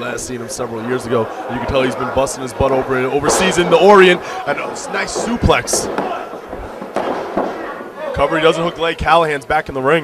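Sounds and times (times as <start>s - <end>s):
hall background noise: 0.0s - 9.4s.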